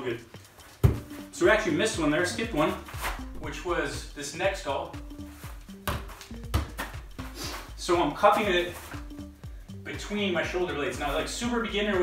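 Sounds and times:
background music: 0.0 - 12.0
soccer ball thuds: 0.8 - 1.3, 5.4 - 7.6.

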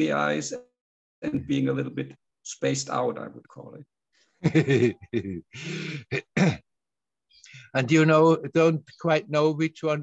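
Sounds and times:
man laughing: 4.4 - 6.4.

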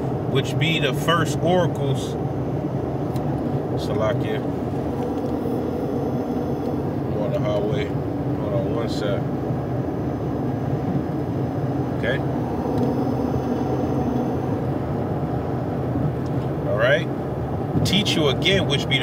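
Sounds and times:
low rumbling background noise: 0.0 - 19.0
man speaking: 3.8 - 4.5, 7.1 - 9.2, 12.0 - 12.3, 16.6 - 17.1, 17.9 - 19.0.

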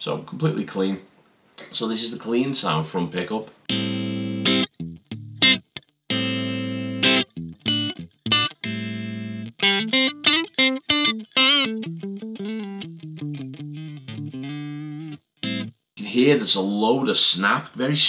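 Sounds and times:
clean electric guitar: 3.7 - 15.8.

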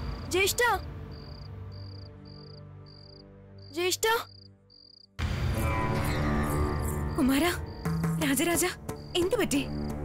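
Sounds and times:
crickets chirping: 0.0 - 5.2, 6.1 - 10.0.

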